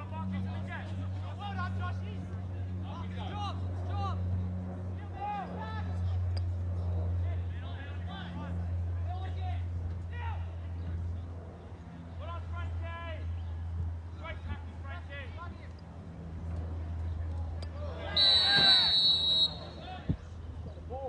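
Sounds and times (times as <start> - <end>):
steady low hum: 0.0 - 21.0
people shouting and calling: 17.7 - 20.1.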